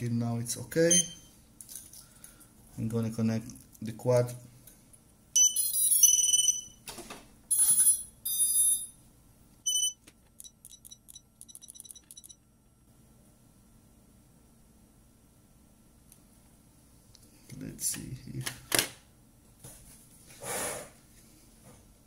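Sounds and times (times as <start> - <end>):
high-pitched electronic beeps: 5.4 - 6.8, 7.5 - 8.9, 9.7 - 12.4.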